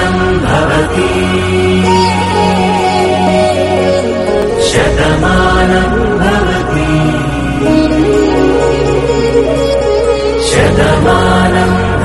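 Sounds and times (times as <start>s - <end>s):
song with held melodic lines: 0.0s - 12.0s
steady low drone: 0.0s - 12.0s.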